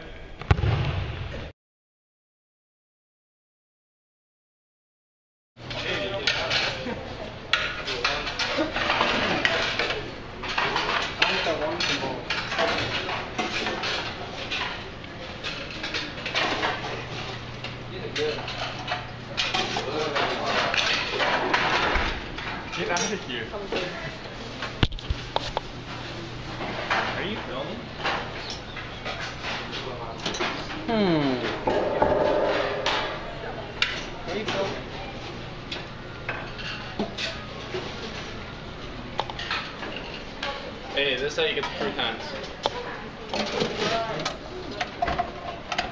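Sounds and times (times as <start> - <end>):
many voices chattering: 5.6 - 24.8, 25.4 - 45.9
clatter of dishes and cutlery: 5.7 - 24.0, 26.6 - 30.8, 31.4 - 33.2, 33.8 - 34.9, 35.7 - 38.4, 39.2 - 40.7, 41.4 - 45.9.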